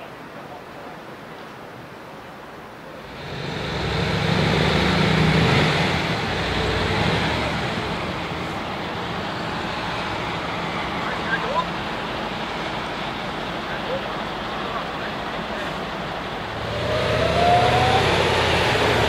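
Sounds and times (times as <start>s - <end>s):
crane diesel engine: 2.9s - 19.0s.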